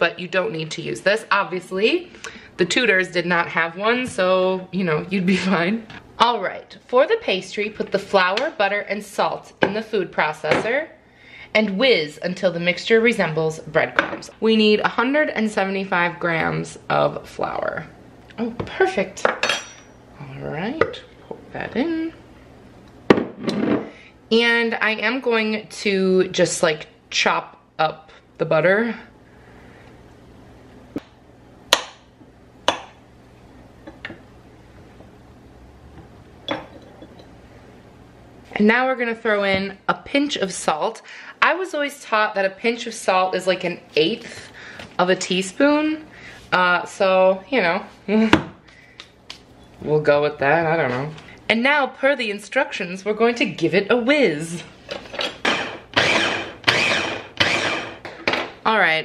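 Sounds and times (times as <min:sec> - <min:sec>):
food chopper motor pulsing: 0:55.2 - 0:58.2.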